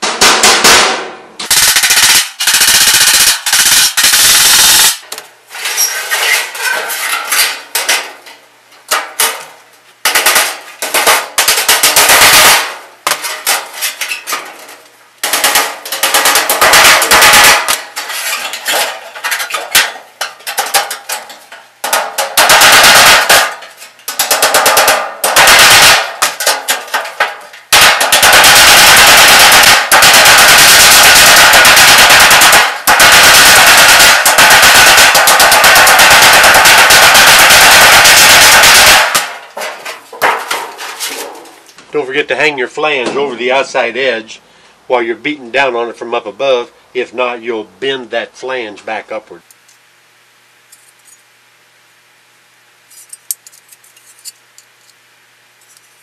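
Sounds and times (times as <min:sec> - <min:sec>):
hammer on sheet metal: 0:00.0 - 0:04.2, 0:19.8 - 0:41.3.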